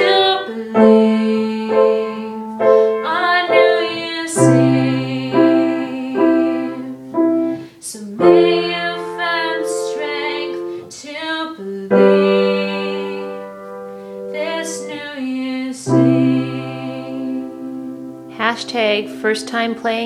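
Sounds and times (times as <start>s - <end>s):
girl singing: 0.0s - 20.0s
piano chords: 0.0s - 20.0s.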